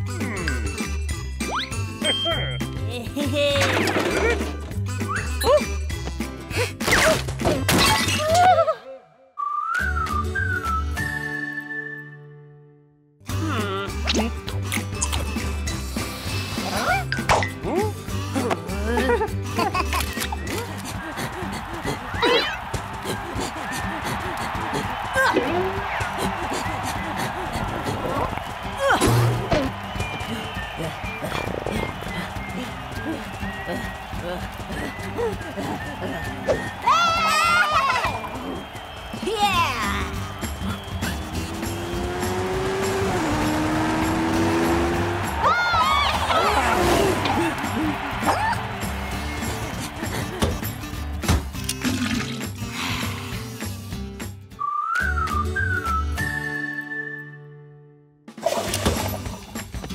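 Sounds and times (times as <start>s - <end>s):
cartoon background music: 0.0s - 8.8s, 13.3s - 59.9s.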